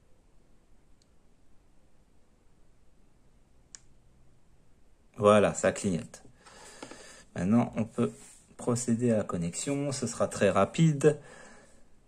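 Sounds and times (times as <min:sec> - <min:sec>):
faint plastic click: 0:03.7 - 0:04.0.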